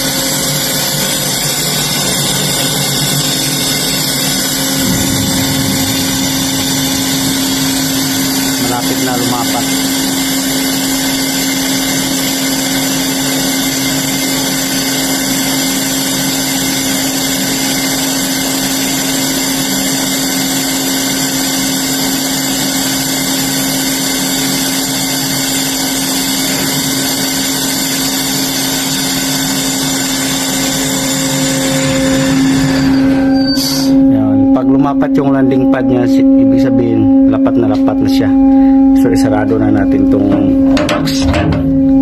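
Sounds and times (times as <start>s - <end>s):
hydraulic machinery humming: 0.7s - 12.5s, 25.8s - 34.6s.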